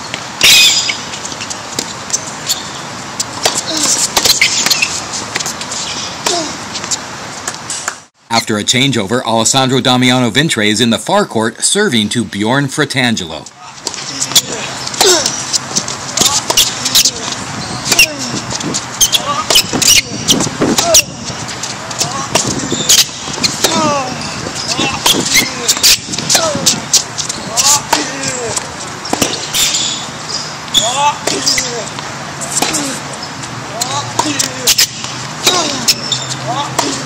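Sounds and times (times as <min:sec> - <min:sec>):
shoes squeaking on court: 0:00.0 - 0:08.1, 0:13.5 - 0:37.0
racket hitting ball: 0:00.1 - 0:08.1, 0:13.8 - 0:30.1, 0:30.7 - 0:37.0
ball bouncing on court: 0:03.2 - 0:05.5, 0:13.8 - 0:21.1, 0:21.9 - 0:24.0, 0:24.6 - 0:30.0, 0:30.7 - 0:33.0, 0:33.8 - 0:37.0.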